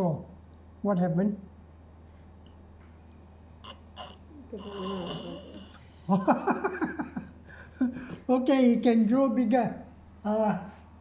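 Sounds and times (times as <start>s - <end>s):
person blowing through a straw: 3.6s - 5.8s
person laughing: 4.0s - 8.2s.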